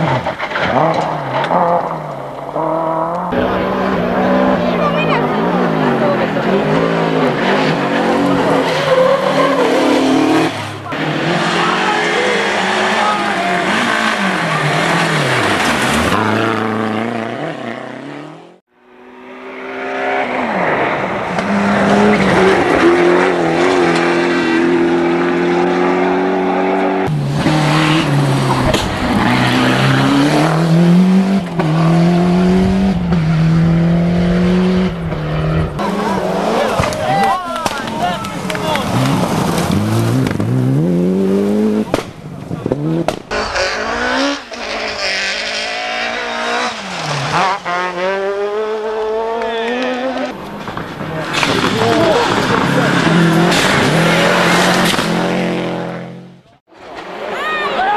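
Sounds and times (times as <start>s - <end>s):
rally car engines at full throttle: 0.0s - 57.9s
spectators' voices: 3.3s - 15.6s, 35.8s - 39.6s, 49.4s - 55.7s, 56.6s - 57.9s.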